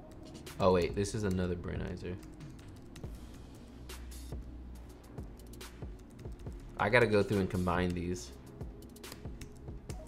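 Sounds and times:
computer keyboard keys clicking: 0.0 - 3.2, 5.4 - 8.1, 8.8 - 10.0.

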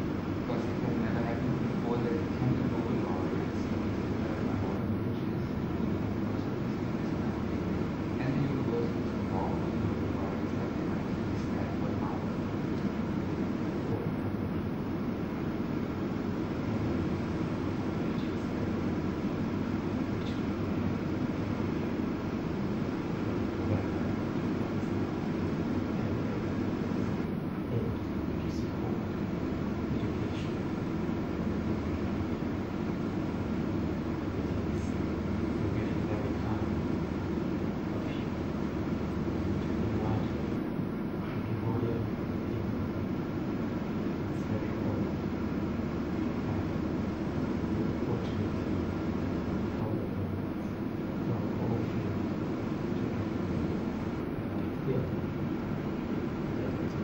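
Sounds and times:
low rumbling ventilation noise: 0.0 - 57.0.

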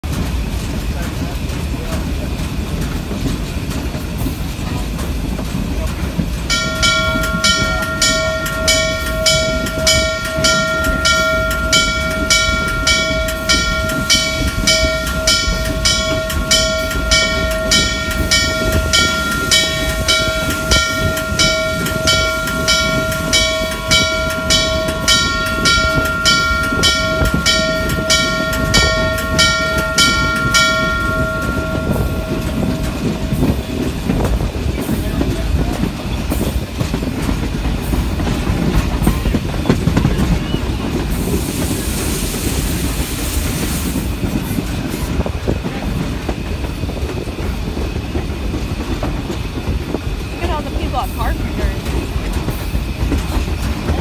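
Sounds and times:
rhythmic beat of running locomotive: 0.0 - 54.0.

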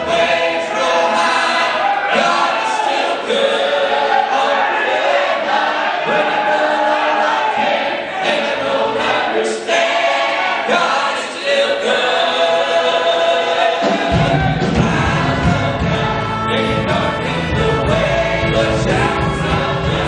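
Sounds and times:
choir singing gospel: 0.0 - 20.0.

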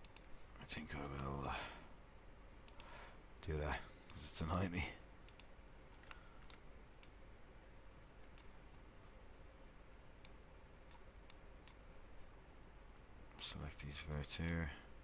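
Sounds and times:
faint computer mouse clicks: 0.0 - 0.4, 2.7 - 2.9, 5.3 - 7.2, 8.2 - 8.5, 10.2 - 11.8
low hiss: 0.0 - 15.0.

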